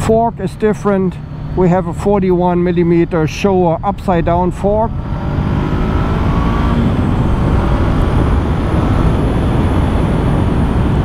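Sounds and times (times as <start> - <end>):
wind rushing over microphone: 2.0 - 11.0
motorcycle engine accelerating: 3.8 - 11.0.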